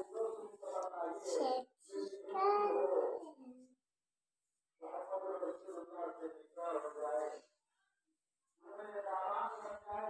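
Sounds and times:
person's voice: 0.0s - 3.6s, 8.6s - 10.0s.

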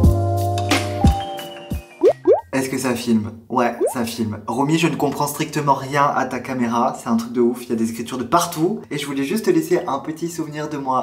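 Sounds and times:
rising bloop sound effects: 2.0s - 2.5s, 3.8s - 4.0s
man talking: 2.6s - 11.0s.

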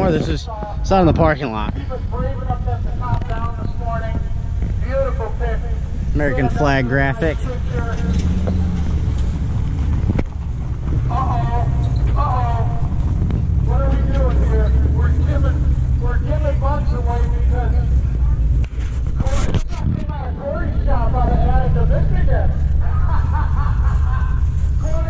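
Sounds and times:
people talking: 0.0s - 8.8s, 11.1s - 13.0s, 13.6s - 25.0s
steady low rumble: 0.0s - 25.0s.

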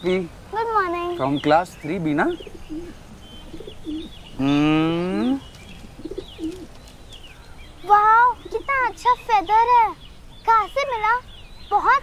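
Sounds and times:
faint high bird chirps: 0.0s - 12.0s
pigeon cooing: 2.2s - 6.8s.

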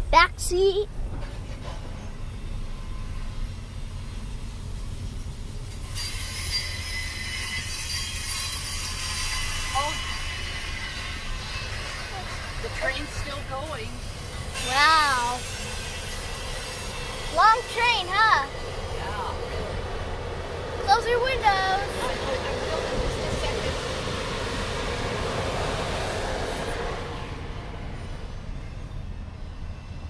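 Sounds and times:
train wheels squealing on rails: 1.1s - 30.0s.

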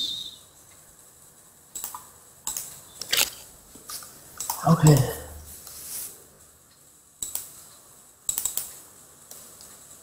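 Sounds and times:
keyboard and mouse clicks: 1.7s - 3.4s, 4.4s - 4.6s, 7.2s - 7.5s, 8.3s - 9.8s.

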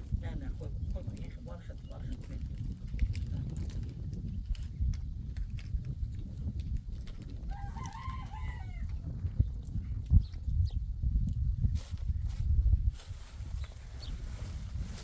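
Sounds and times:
steady low rumble: 0.0s - 15.0s
rooster crowing: 7.5s - 9.1s.

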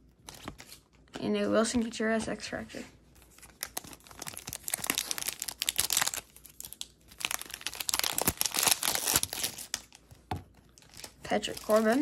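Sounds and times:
wrapper crinkling and tearing: 3.2s - 10.1s, 10.7s - 12.0s.

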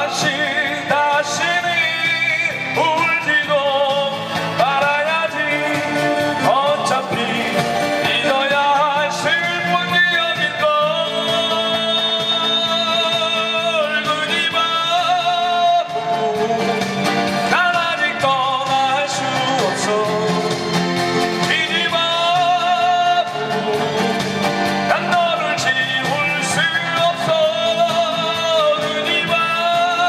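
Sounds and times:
man singing long held notes: 0.0s - 20.7s, 21.3s - 30.0s
strummed acoustic guitars: 0.0s - 30.0s.

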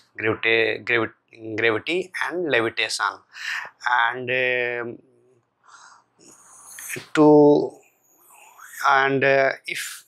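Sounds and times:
man speaking: 0.0s - 5.2s, 6.2s - 10.0s
man breathing in: 5.6s - 6.6s.

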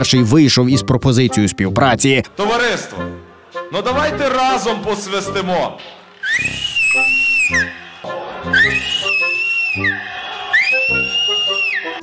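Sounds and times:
music: 0.0s - 12.0s
shrill finger whistles: 6.2s - 7.8s, 8.5s - 12.0s.

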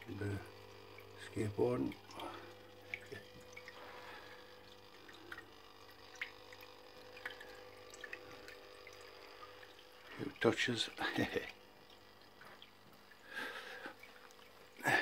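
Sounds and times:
soft water drips: 0.0s - 15.0s
water fountain trickling: 0.0s - 15.0s.

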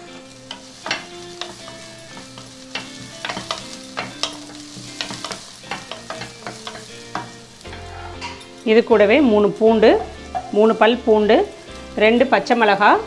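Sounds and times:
onion frying in oil: 0.0s - 13.0s
wooden spatula scraping metal pot: 0.5s - 8.5s.

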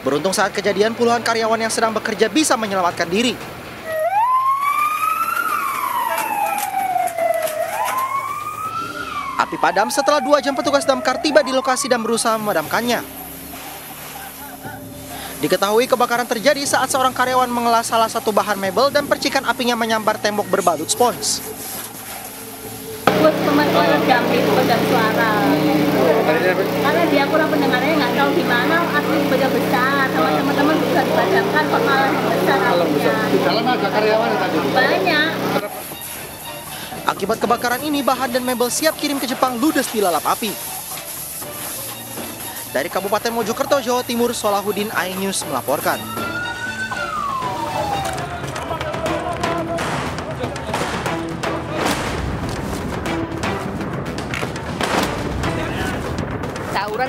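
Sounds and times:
fire truck siren wailing: 3.7s - 51.6s
woman talking rapidly: 23.1s - 35.6s, 56.8s - 57.0s.

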